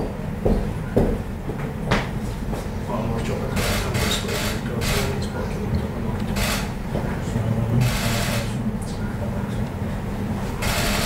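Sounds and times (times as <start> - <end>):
footsteps on wooden floor: 0.0 - 2.8.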